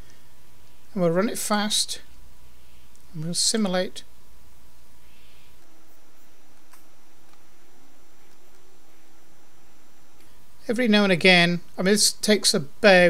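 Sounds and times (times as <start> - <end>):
background hiss: 0.0 - 13.0
faint hum: 0.0 - 13.0.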